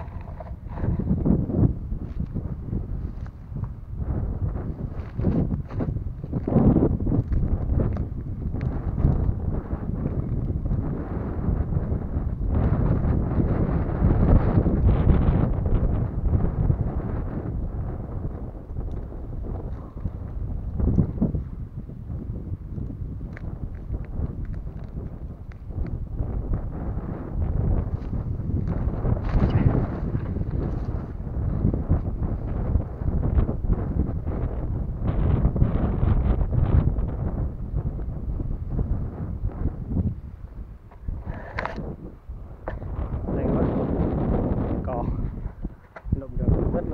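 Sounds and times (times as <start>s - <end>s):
wind buffeting microphone: 0.0s - 46.9s.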